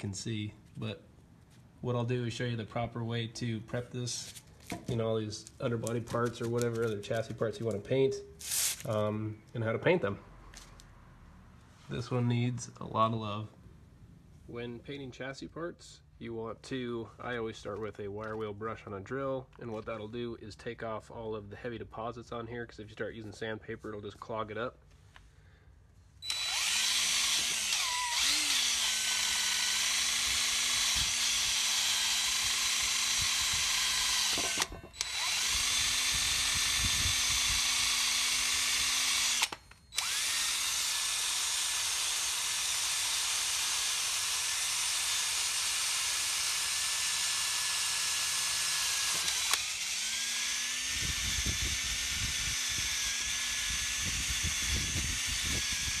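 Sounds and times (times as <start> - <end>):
drill with wire brush whining: 8.4 - 8.9, 26.2 - 56.0.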